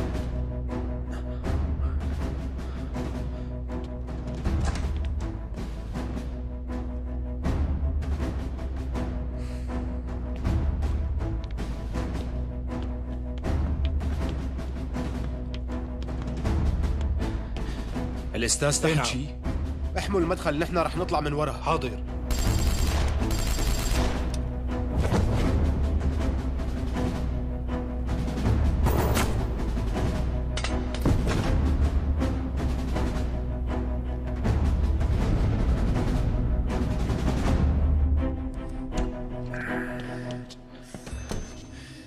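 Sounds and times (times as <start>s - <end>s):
dramatic soundtrack music: 0.0s - 42.0s
automatic rifle gunfire: 22.3s - 24.2s.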